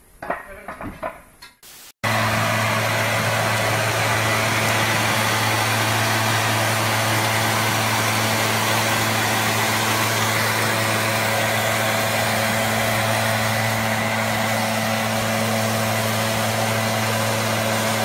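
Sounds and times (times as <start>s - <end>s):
leaf blower engine running: 2.0s - 18.0s.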